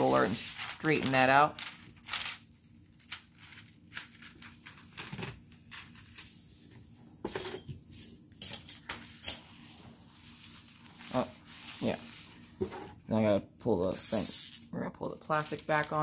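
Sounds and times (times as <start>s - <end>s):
plastic film rustling and crinkling: 0.0s - 5.1s, 15.2s - 16.0s.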